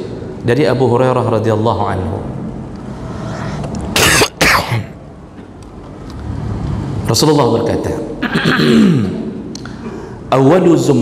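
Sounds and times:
man coughing: 3.9 - 5.0, 8.2 - 9.3.

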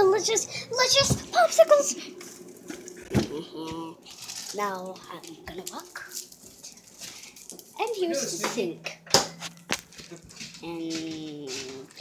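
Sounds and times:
low steady hum: 0.0 - 12.0
sharp knocks: 8.5 - 10.7.

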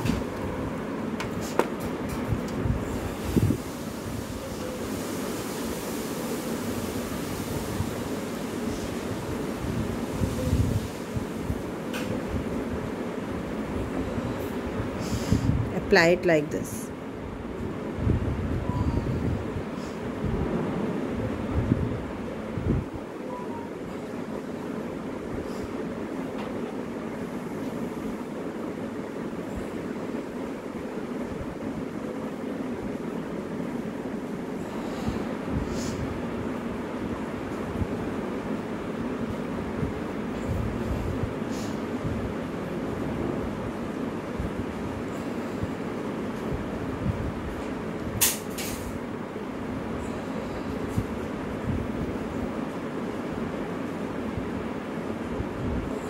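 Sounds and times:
rumbling hiss: 2.6 - 56.0.

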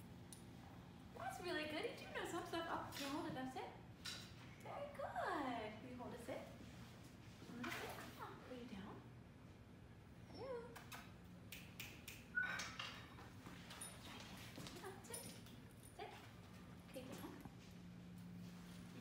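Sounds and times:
dog whining softly: 12.3 - 13.1.

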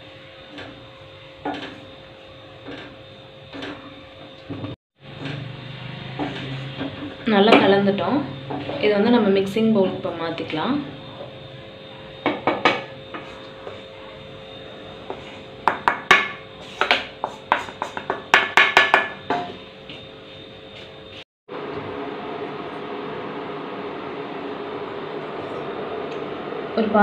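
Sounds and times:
steady hum: 0.0 - 27.0
spatula scraping metal bowl: 5.2 - 7.2.

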